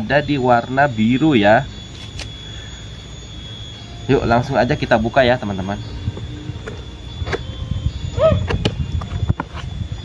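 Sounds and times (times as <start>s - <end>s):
short rising and falling squeal: 1.6s - 9.0s.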